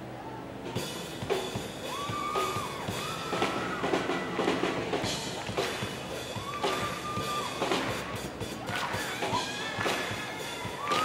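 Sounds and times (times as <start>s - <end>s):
marching band playing: 0.6s - 11.0s
steady drum beat: 0.7s - 11.0s.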